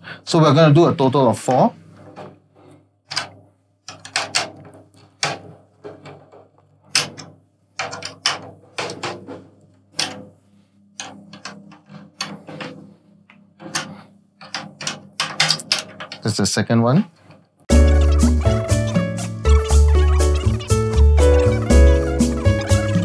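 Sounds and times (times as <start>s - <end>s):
drum key clicks and creaks: 17.7s - 23.0s.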